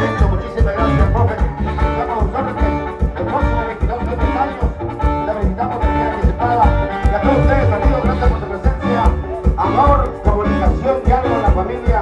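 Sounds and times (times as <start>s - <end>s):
electronic keyboards: 0.0s - 12.0s
pulsing bass beat: 0.0s - 12.0s.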